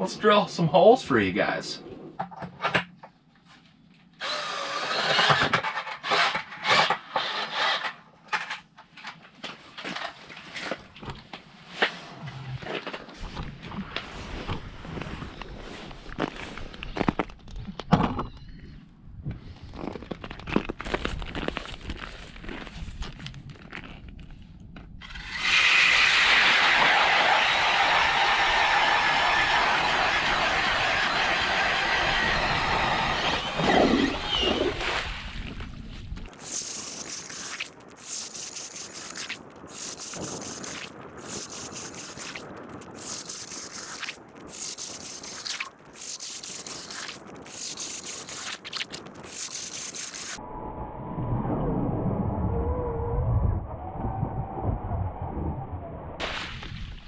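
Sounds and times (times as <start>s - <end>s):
ice auger boring into ice: 4.2s - 7.9s, 25.0s - 27.6s, 31.0s - 34.8s.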